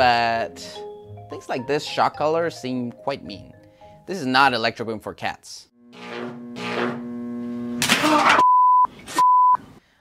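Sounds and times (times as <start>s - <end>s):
censor bleep: 8.4s - 9.6s.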